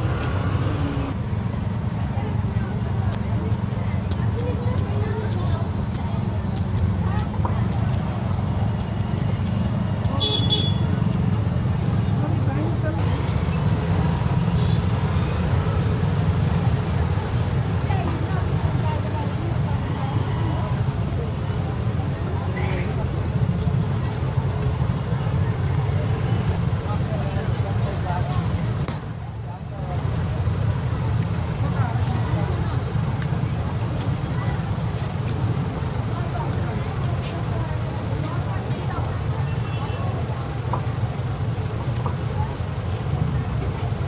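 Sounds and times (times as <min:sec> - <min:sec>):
passersby's voices: 0:00.0 - 0:44.0
traffic rumble: 0:00.0 - 0:44.0.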